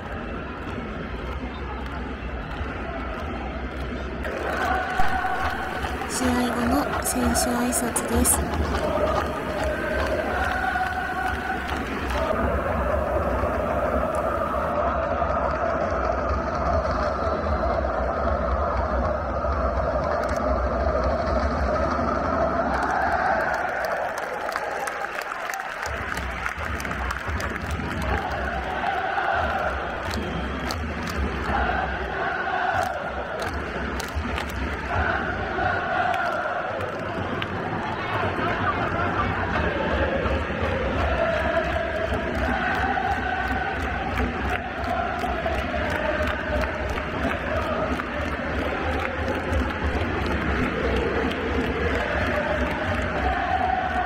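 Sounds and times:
crowd din: 0:04.2 - 0:19.7, 0:34.9 - 0:54.0
football supporters chanting: 0:04.2 - 0:24.0, 0:27.3 - 0:54.0.

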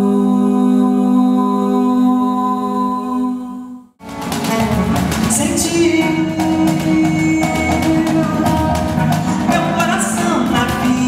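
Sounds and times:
live band playing instrumental: 0:04.0 - 0:11.0.

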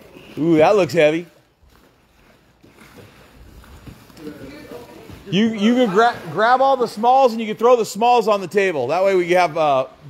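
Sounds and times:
cardboard boxes being shifted: 0:00.1 - 0:06.4.

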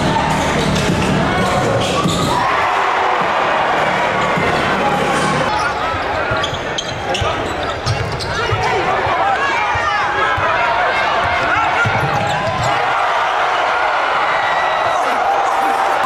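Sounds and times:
people talking and shouting: 0:00.0 - 0:16.0
sneakers squeaking on court: 0:05.5 - 0:08.9, 0:11.2 - 0:12.8.

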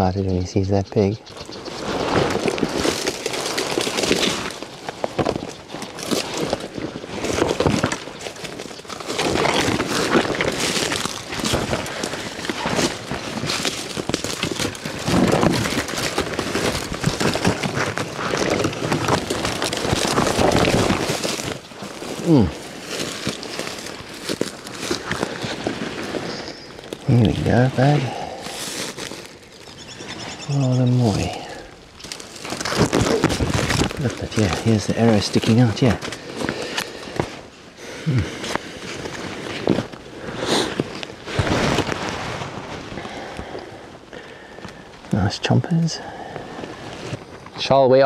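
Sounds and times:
branches and leaves crackling: 0:00.0 - 0:48.0
footsteps in brush: 0:01.2 - 0:45.2.

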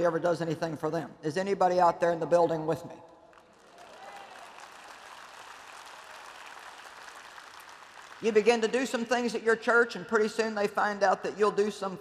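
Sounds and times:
audience applauding: 0:03.3 - 0:08.8.

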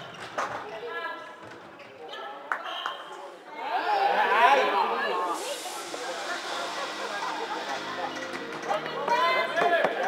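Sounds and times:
indistinct echoing voices: 0:03.5 - 0:10.0
burst of hiss: 0:05.2 - 0:08.3.

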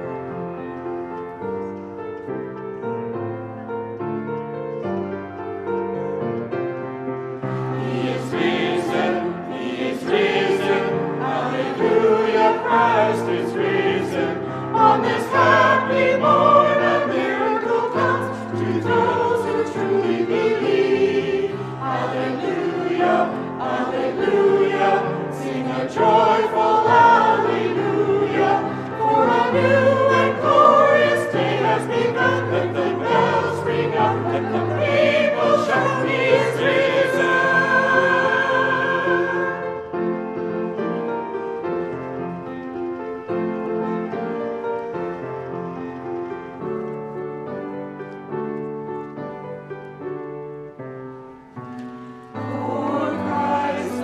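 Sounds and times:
mixed choir singing: 0:07.4 - 0:41.0, 0:52.3 - 0:54.0.

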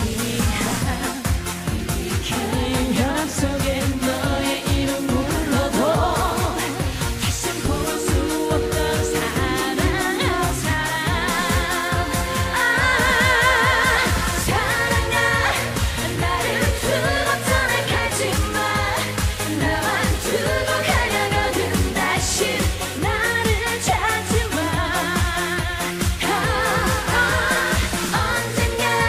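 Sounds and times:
band with dance beat: 0:00.0 - 0:29.0
woman singing with vibrato: 0:00.0 - 0:29.0.

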